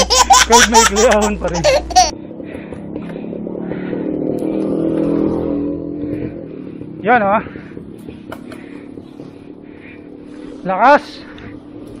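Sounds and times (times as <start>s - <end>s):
motor tricycle engine passing: 0.0s - 12.0s.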